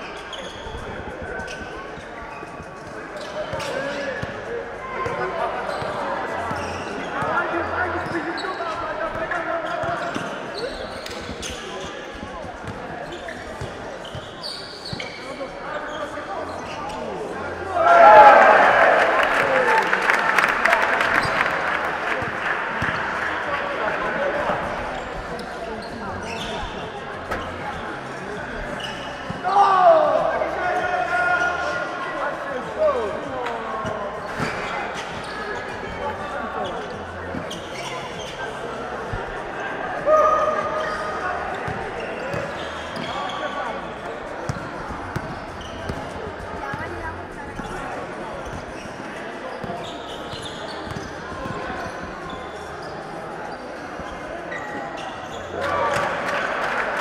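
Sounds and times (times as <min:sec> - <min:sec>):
shoes squeaking on floor: 0:00.0 - 0:17.6, 0:24.4 - 0:29.8, 0:33.8 - 0:56.1.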